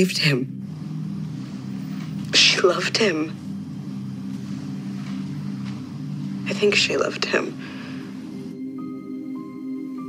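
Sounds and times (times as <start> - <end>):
low sustained music drone: 0.0 - 10.0.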